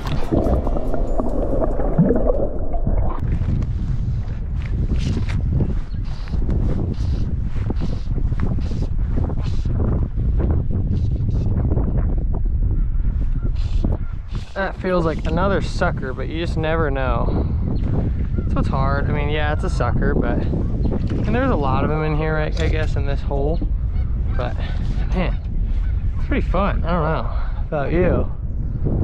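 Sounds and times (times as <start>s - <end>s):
muffled underwater gurgling: 0.0s - 4.2s
wind buffeting microphone: 0.0s - 29.0s.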